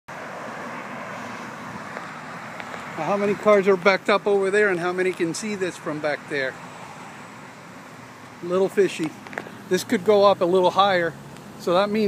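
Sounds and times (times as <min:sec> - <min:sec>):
road traffic noise: 0:00.1 - 0:12.0.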